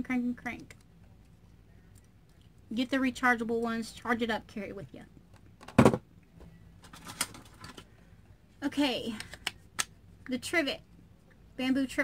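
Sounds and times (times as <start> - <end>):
small items being handled: 6.8 - 8.0.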